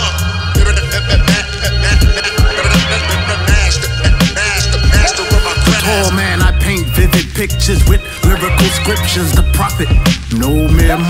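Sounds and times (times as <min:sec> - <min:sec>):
heavy kick drum beat: 0:00.6 - 0:11.0
voice over a beat: 0:04.9 - 0:11.0.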